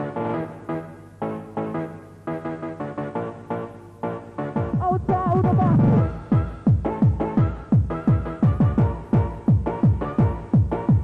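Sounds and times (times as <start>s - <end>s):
fast kick drum: 4.8s - 11.0s.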